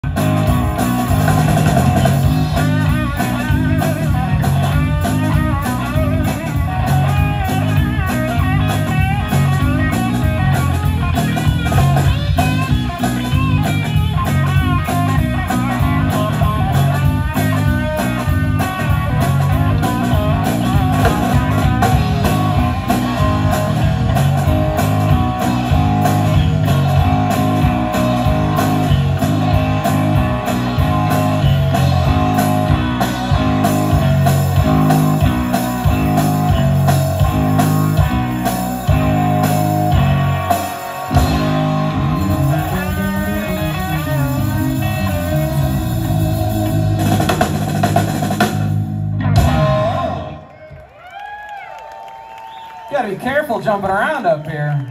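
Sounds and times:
lead guitar with bent notes: 0:00.0 - 0:50.6
blues-rock band playing: 0:00.0 - 0:51.2.

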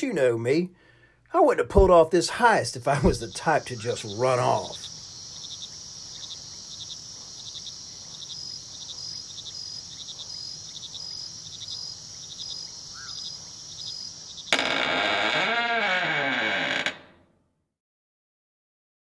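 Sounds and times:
crickets chirping: 0:02.9 - 0:16.8
wooden door creaking open: 0:14.4 - 0:17.3.

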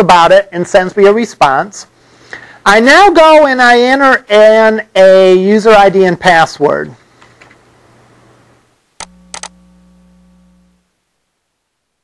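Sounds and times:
faint low hum: 0:07.5 - 0:12.0.

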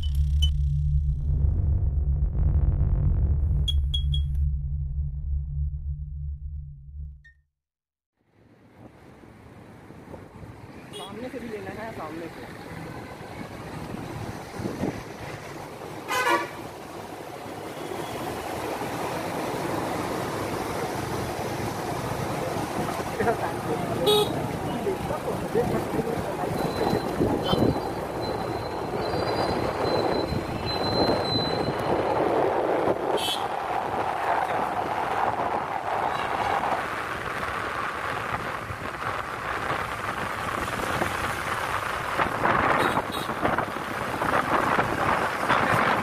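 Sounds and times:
deep low rumble: 0:00.0 - 0:07.3
engine and road noise: 0:00.0 - 0:07.3, 0:08.1 - 0:46.0
vehicle horn toot: 0:16.1 - 0:16.6, 0:24.0 - 0:24.4, 0:27.4 - 0:27.8, 0:33.2 - 0:33.5, 0:42.8 - 0:43.3.

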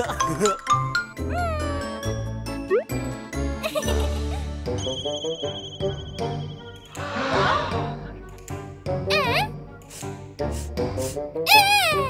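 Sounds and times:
playful children's music: 0:00.0 - 0:12.0.

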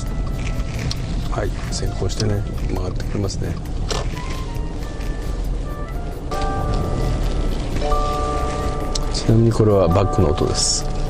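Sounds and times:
car rumble on road: 0:00.0 - 0:11.0
slow melody music: 0:03.6 - 0:11.0.

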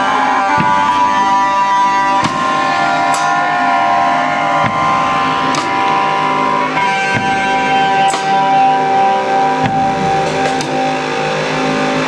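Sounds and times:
electric guitar holding long notes: 0:00.0 - 0:12.0
sharp drum hits: 0:00.4 - 0:11.0.

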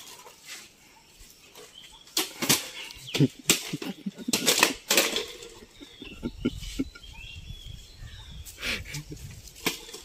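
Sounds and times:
plastic bottles striking: 0:02.2 - 0:05.5.

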